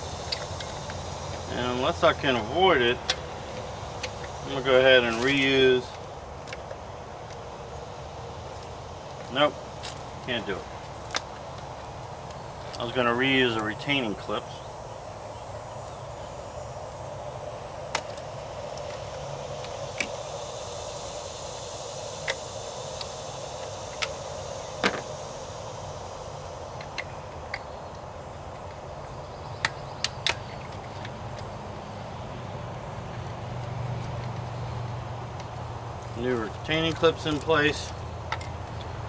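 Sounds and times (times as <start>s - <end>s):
high insect drone: 0.0s - 39.0s.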